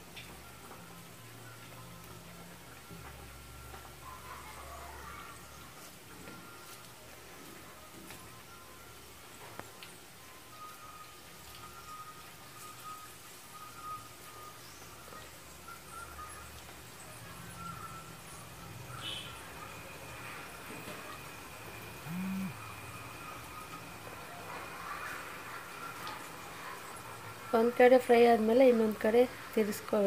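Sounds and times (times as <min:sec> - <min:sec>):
oil sizzling while deep-frying: 0:00.0 - 0:30.0
faint high tones: 0:17.2 - 0:27.0
short low hum: 0:22.0 - 0:22.6.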